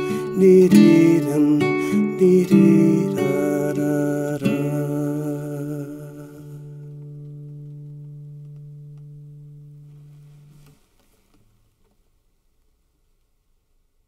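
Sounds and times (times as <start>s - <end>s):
nylon-string guitar strummed chord: 0.0s - 10.6s.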